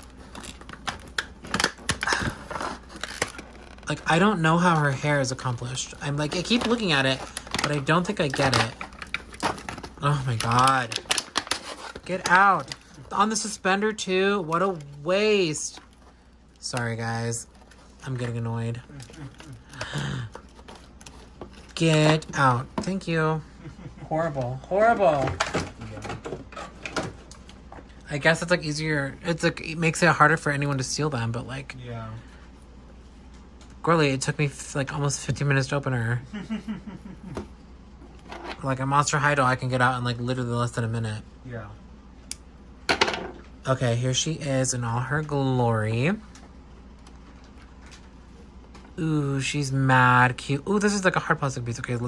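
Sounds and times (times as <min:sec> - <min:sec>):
low steady hum: 0:00.0 - 0:52.0
packaging crinkling and clicking: 0:00.2 - 0:03.9, 0:06.2 - 0:13.0.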